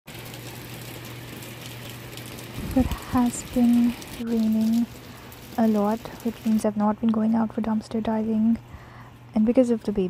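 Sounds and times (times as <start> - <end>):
heavy rain hissing: 2.2 - 6.8.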